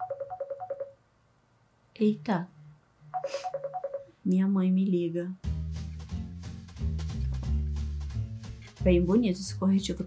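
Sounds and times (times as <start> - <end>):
mobile phone ringtone beeps: 0.0 - 1.0, 3.1 - 4.2.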